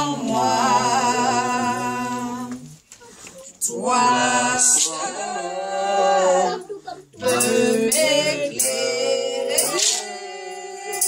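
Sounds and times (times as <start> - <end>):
voices singing a worship song: 0.0 - 11.0.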